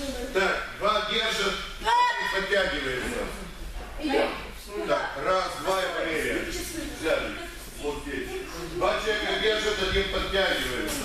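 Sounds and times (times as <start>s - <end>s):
man talking: 0.3s - 3.4s, 4.8s - 11.0s.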